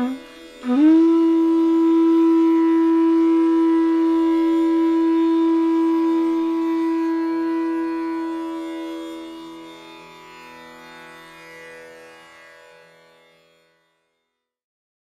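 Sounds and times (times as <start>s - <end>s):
bamboo flute long note: 0.0s - 9.8s.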